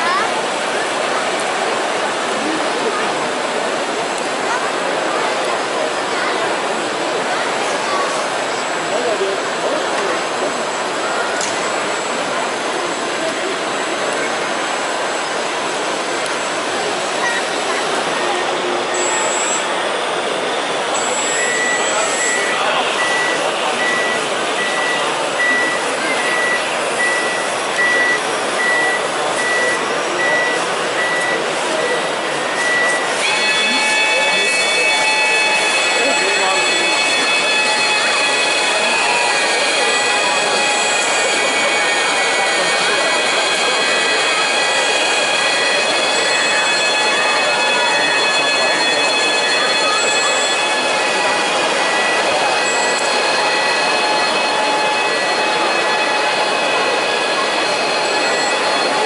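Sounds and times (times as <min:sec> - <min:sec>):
high whining tones: 0:17.1 - 0:59.0
reversing beeper: 0:17.2 - 0:59.0.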